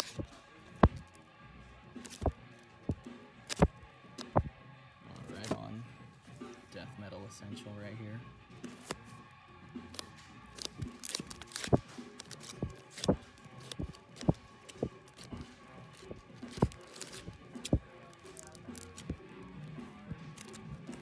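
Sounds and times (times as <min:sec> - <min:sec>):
plastic sleeves rustling: 0:00.0 - 0:01.2, 0:09.9 - 0:21.0
faint background music: 0:00.0 - 0:21.0
records knocking and slapping: 0:12.6 - 0:17.8.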